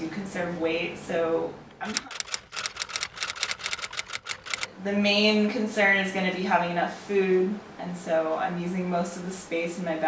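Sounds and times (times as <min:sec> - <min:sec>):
typewriter key strikes: 0:01.9 - 0:04.7.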